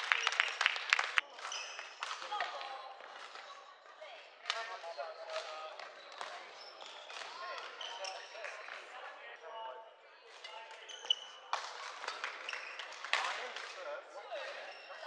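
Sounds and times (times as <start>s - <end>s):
chatter of many voices: 1.2s - 15.0s
shoe squeaks on wooden court: 1.4s - 2.0s, 4.8s - 8.5s, 10.4s - 13.0s, 14.4s - 15.0s.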